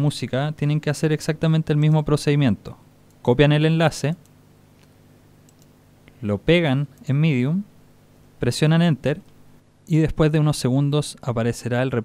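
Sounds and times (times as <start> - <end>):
computer clicks: 4.2 - 5.8.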